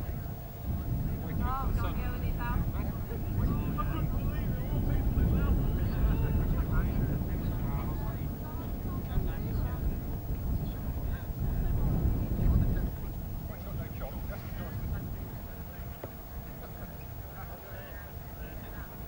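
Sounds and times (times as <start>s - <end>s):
jet engines rumbling: 0.0s - 19.0s
onlookers chattering: 0.0s - 19.0s.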